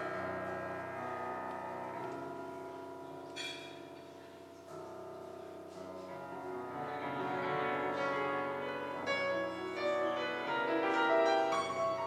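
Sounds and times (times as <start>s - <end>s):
grand piano slow notes: 0.0s - 12.0s.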